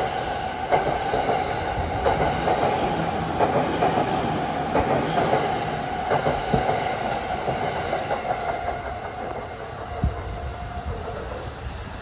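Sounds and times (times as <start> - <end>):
train wheels clacking: 0.0 - 11.6.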